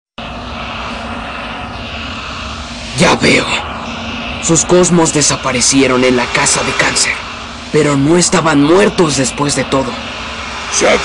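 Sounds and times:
low hum: 0.2 - 11.0
rushing droning sound effect: 0.2 - 11.0.

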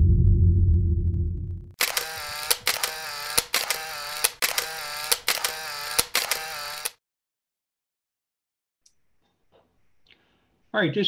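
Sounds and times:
deep rumble: 0.0 - 1.8
camera shutter clicks: 1.8 - 7.0
motorized film advance whirr: 1.8 - 7.0.

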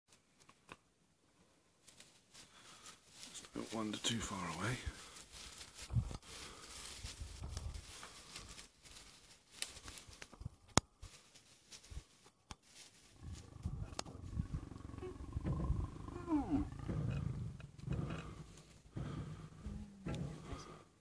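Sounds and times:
lions growling low: 13.1 - 20.9.

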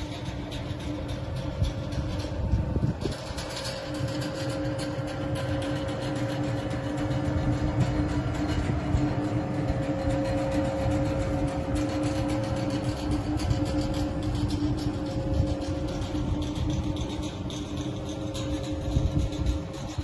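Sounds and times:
low train rumble: 0.0 - 20.0
two-note electrical hum: 0.0 - 20.0.

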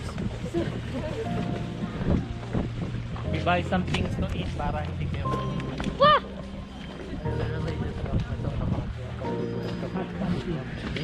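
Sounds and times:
wind buffeting microphone: 0.0 - 9.4.

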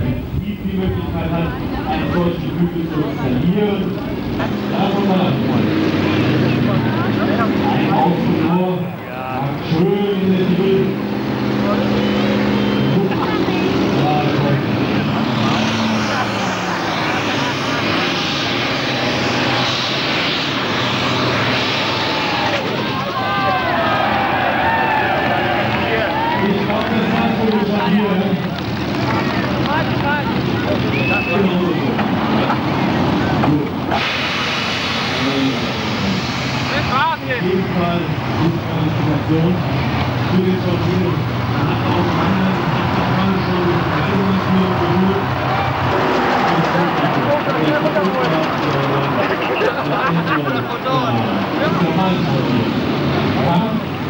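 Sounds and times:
tractor engine at full throttle: 0.0 - 24.4, 25.5 - 54.0.

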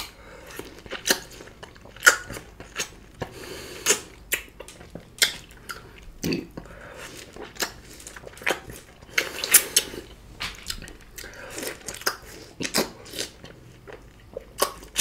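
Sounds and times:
chewing juicy fruit: 0.0 - 15.0.

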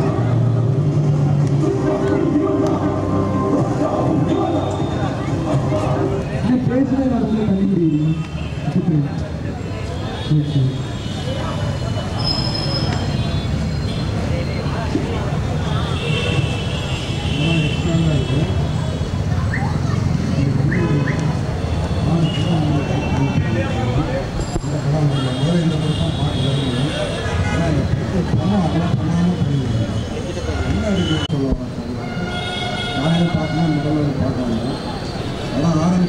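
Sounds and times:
street traffic noise: 0.0 - 36.0
steady high tone: 1.6 - 6.6
man speaking: 1.6 - 9.2, 17.4 - 18.7, 22.0 - 32.2, 33.0 - 34.8.

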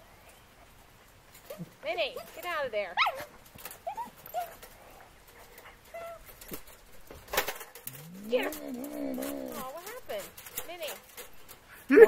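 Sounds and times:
dog yelp: 3.0 - 4.6
dogs whining: 3.0 - 4.7, 5.4 - 6.4, 7.9 - 10.0.

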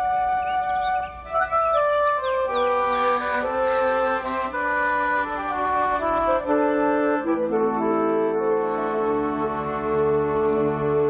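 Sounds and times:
held-note melody: 0.0 - 11.0
low sustained chords: 7.3 - 11.0.

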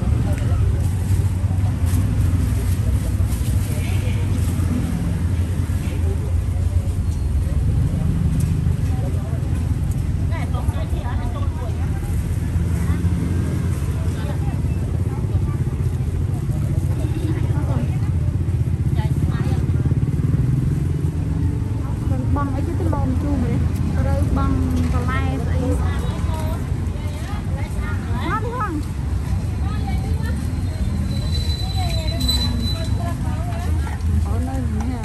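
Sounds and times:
faint indistinct voices: 0.0 - 35.0.

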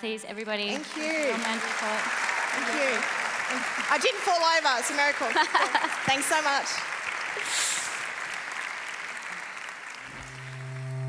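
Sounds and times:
audience applauding: 0.7 - 11.0
low electronic music chord: 10.1 - 11.0.

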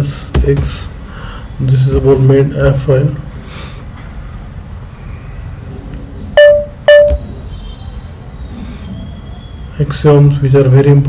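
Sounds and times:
electronic beeps: 6.3 - 7.8.

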